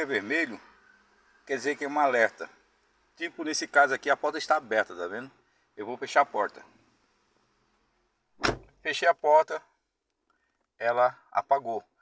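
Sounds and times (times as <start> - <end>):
car door shutting: 8.4 - 8.8.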